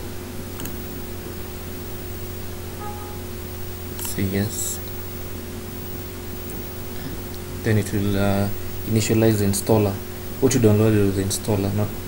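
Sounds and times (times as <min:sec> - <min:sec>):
low electrical hum: 0:00.0 - 0:12.0
microphone hiss: 0:00.0 - 0:12.0
faint pair of tones: 0:02.8 - 0:03.6.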